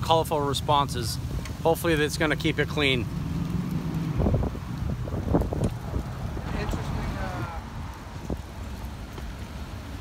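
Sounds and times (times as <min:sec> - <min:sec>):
street traffic rumble: 0:00.0 - 0:10.0
wind buffeting microphone: 0:02.4 - 0:10.0.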